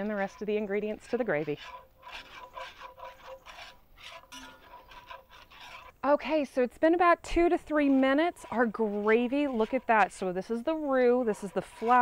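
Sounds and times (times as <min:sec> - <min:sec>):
whisk scraping in skillet: 0:00.0 - 0:12.0.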